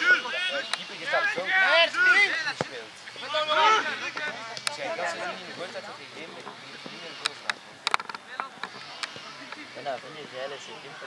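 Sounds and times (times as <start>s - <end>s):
people shouting on a football pitch: 0.0s - 5.8s.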